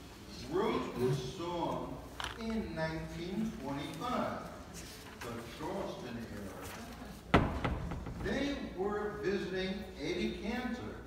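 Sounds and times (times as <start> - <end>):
sharp knock: 7.3 - 8.5.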